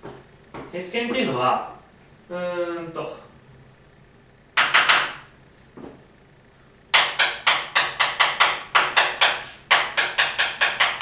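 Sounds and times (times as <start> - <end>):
chalk tapping on blackboard: 4.6 - 5.2, 6.9 - 11.0
chalk scraping on blackboard: 7.2 - 11.0.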